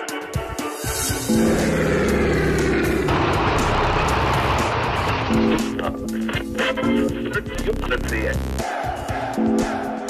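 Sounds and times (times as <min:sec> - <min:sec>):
theme music with low chords: 0:00.0 - 0:10.0
rushing sound effect: 0:01.0 - 0:06.1.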